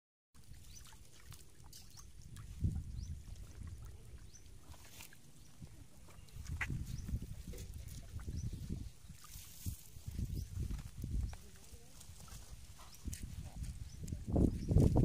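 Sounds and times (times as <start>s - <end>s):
fish splashing in shallow water: 0.4s - 14.0s.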